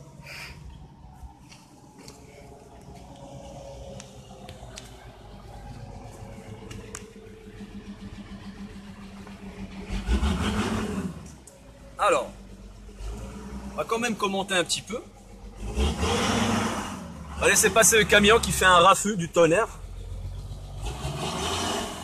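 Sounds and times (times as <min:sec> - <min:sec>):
truck passing: 0:00.0 - 0:22.0.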